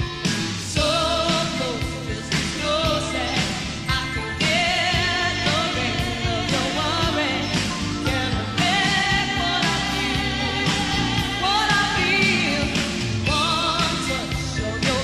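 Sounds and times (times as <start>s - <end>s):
band with drums and keyboards: 0.0s - 15.0s
woman singing pop song: 0.6s - 15.0s.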